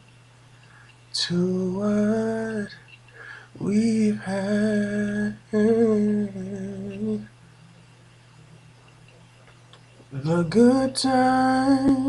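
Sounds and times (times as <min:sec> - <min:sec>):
faint steady low hum: 0:00.0 - 0:12.0
man singing wordless notes: 0:01.1 - 0:02.8, 0:03.6 - 0:07.3, 0:10.1 - 0:12.0.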